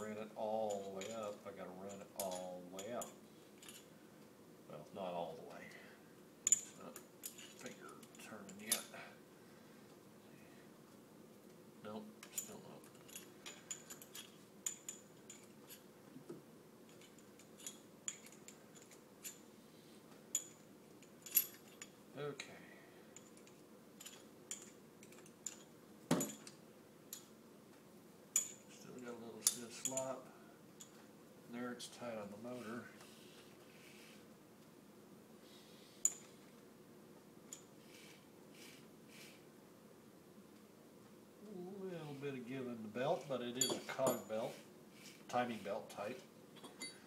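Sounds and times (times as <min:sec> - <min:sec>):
metal hand tools clinking: 0:00.6 - 0:03.9, 0:06.4 - 0:09.1, 0:12.2 - 0:15.8, 0:16.9 - 0:19.4, 0:23.2 - 0:27.3, 0:28.4 - 0:30.2, 0:43.1 - 0:44.6, 0:46.6 - 0:47.0.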